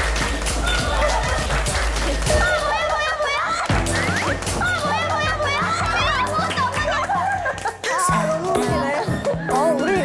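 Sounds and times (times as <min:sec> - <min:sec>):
background music with steady beat: 0:00.0 - 0:10.0
excited high-pitched voices: 0:02.2 - 0:10.0
laughter: 0:05.1 - 0:08.0.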